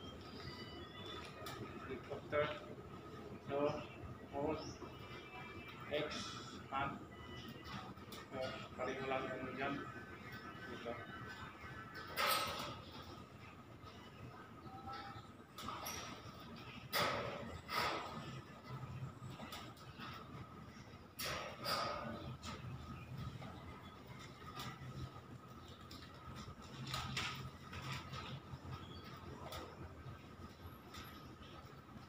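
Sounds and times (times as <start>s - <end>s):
faint low hum: 0.0s - 32.0s.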